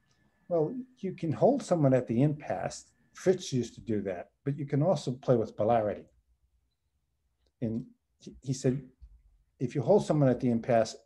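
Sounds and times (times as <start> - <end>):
man speaking: 0.5 - 6.1, 7.6 - 9.0, 9.6 - 11.0.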